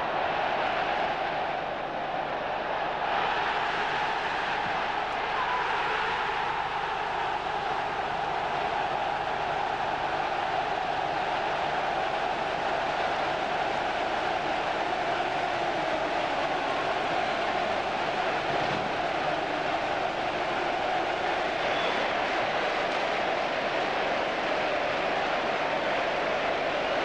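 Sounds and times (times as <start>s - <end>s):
large stadium crowd din: 0.0s - 27.0s.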